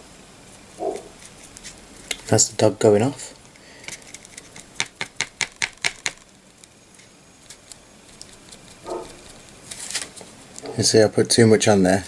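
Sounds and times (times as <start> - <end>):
foam dabbing paint taps: 3.9 - 6.3.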